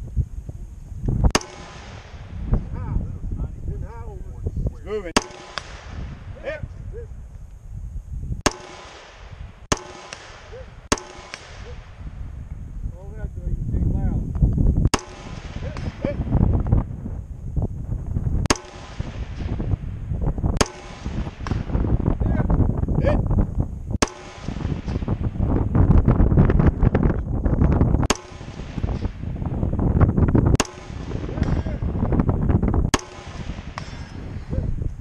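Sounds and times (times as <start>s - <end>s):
rifle shots with echo: 1.3s - 3.0s, 4.9s - 6.6s, 8.4s - 12.4s, 14.9s - 16.4s, 18.4s - 22.6s, 24.0s - 27.0s, 27.6s - 32.2s, 32.9s - 34.6s.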